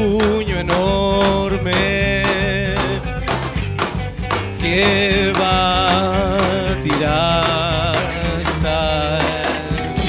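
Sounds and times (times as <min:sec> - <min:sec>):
bass guitar: 0:00.0 - 0:10.0
drums steady beat: 0:00.0 - 0:10.0
electric guitar: 0:00.0 - 0:10.0.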